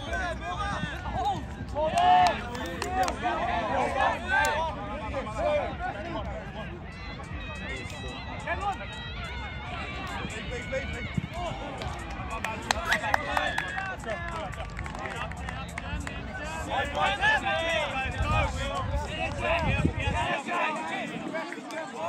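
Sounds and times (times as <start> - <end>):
people shouting on sports field: 0.0 - 14.5, 15.4 - 22.0
low wind rumble on microphone: 0.0 - 21.3.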